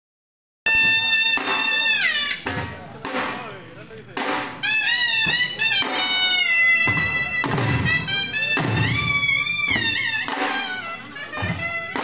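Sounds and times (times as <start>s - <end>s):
shrill double-reed pipe: 0.7s - 2.6s, 4.3s - 12.0s.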